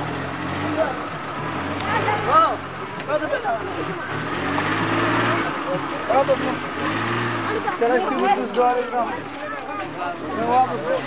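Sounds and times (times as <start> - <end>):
crowd voices: 0.0 - 11.0
large vehicle engine revving: 0.0 - 11.0.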